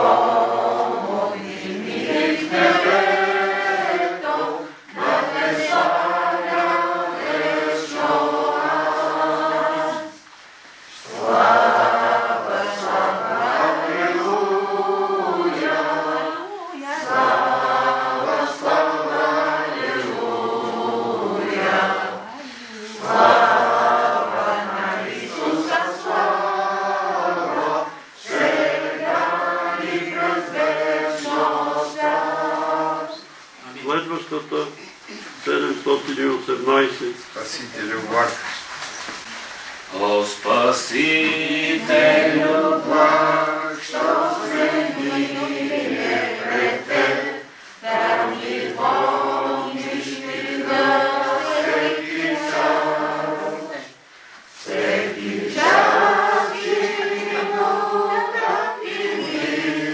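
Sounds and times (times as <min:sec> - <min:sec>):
group singing a hymn unaccompanied: 0:00.0 - 0:38.5, 0:39.1 - 0:59.9.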